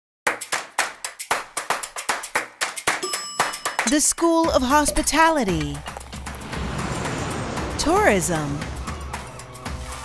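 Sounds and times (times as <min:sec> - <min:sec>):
bell-like ding: 0:03.0 - 0:04.0.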